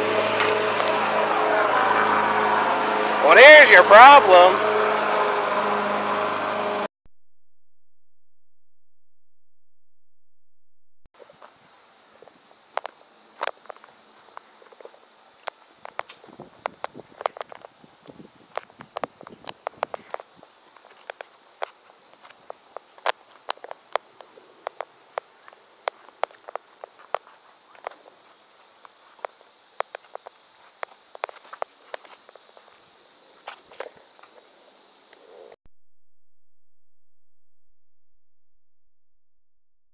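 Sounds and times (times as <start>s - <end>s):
faint steady hiss: 11.2s - 35.6s
footsteps on pavement: 13.5s - 34.4s.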